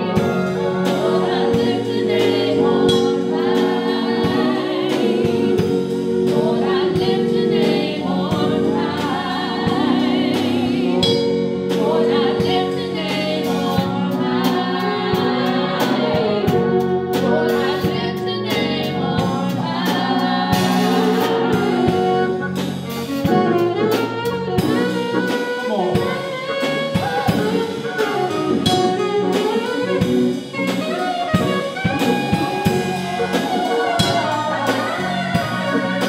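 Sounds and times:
drums: 0.0s - 36.0s
gospel choir singing: 0.0s - 36.0s
sustained instrumental chords: 0.0s - 36.0s.

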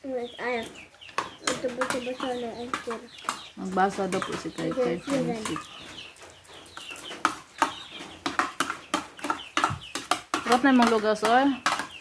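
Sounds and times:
chickens chirping: 0.0s - 12.0s.

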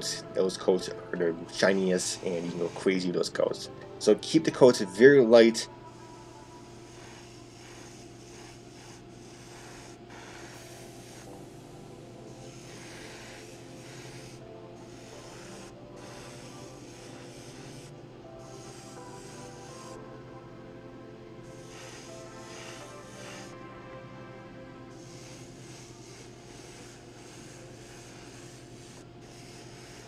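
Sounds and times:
airbrush spraying: 0.0s - 5.2s, 5.9s - 20.0s, 21.5s - 23.6s, 24.9s - 30.0s.

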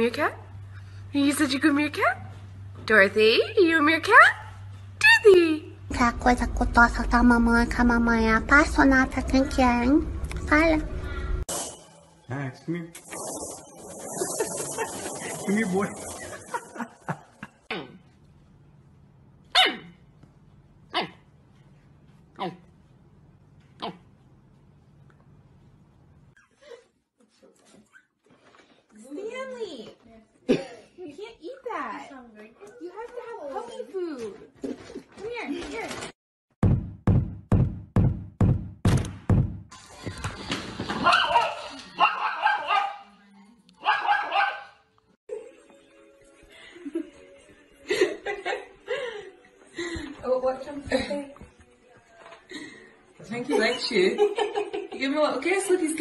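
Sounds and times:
puppy barking: 19.5s - 20.0s, 20.9s - 21.2s, 41.0s - 43.1s, 43.8s - 44.8s.

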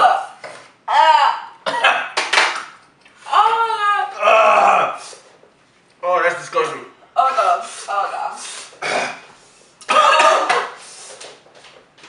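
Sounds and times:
person groaning: 4.1s - 5.1s.

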